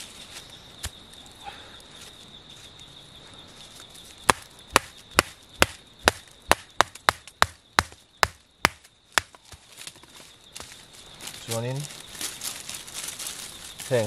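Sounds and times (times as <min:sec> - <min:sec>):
machete chopping wooden stick: 0:04.3 - 0:09.6.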